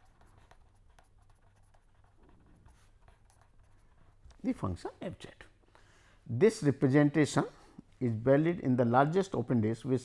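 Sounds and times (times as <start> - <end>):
pen scratching on paper: 0.0 - 4.4.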